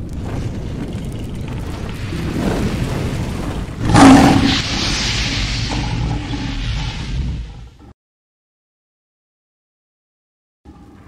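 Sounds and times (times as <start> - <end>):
deep rumble: 0.0 - 7.9
hissing rumbling tail: 0.0 - 7.9.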